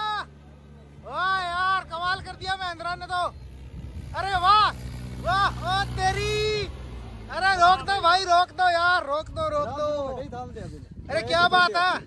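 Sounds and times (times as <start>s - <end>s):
man shouting: 0.0s - 0.3s, 1.0s - 3.3s, 4.2s - 10.0s
tractor diesel engine running: 0.0s - 11.5s.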